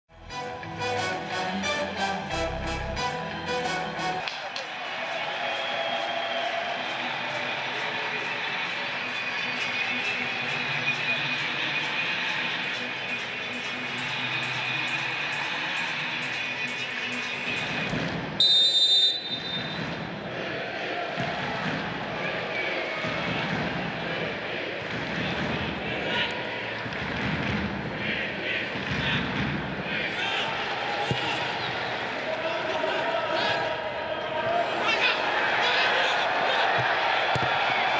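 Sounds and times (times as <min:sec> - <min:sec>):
stadium crowd noise: 0:00.2 - 0:37.9
referee's whistle: 0:18.4 - 0:19.8.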